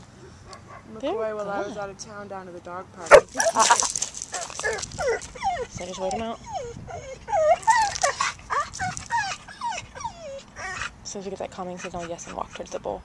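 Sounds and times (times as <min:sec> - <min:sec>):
dog whining and yipping: 0:03.1 - 0:11.0.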